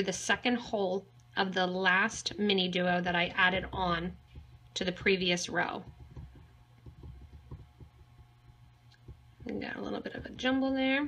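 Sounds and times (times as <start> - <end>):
low thumps: 3.1 - 11.0.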